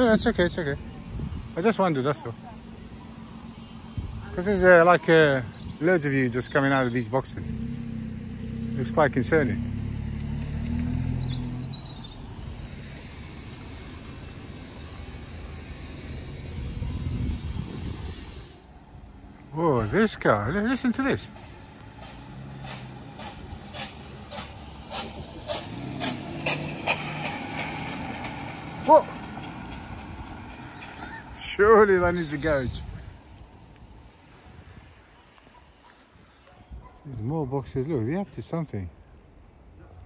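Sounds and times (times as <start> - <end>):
car engine running: 0.1 - 30.9
car tyres hissing on wet road: 12.4 - 18.7, 21.6 - 30.6.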